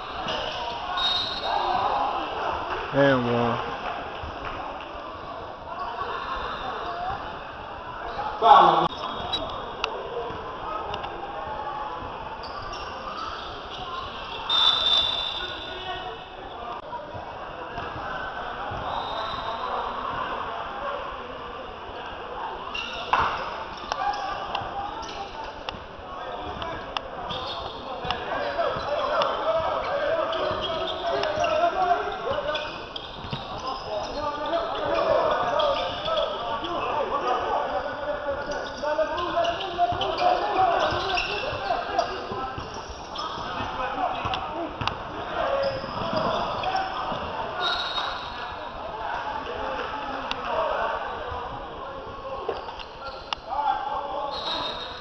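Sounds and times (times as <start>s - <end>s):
indistinct chatter and calls: 0.0s - 55.0s.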